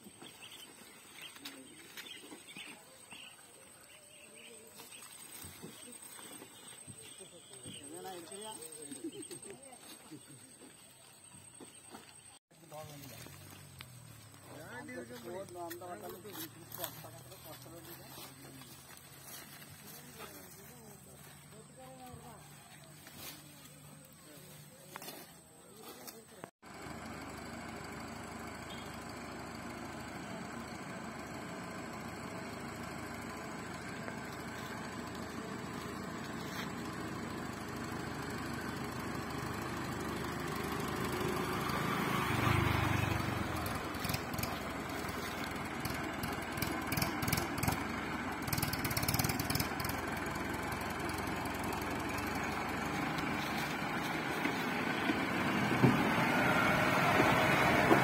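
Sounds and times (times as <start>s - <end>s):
tractor diesel engine running: 0.0s - 58.0s.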